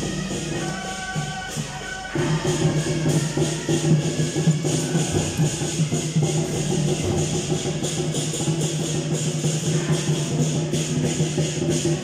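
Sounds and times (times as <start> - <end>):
clashing cymbals: 0.0 - 12.0
drums and gongs: 0.0 - 12.0.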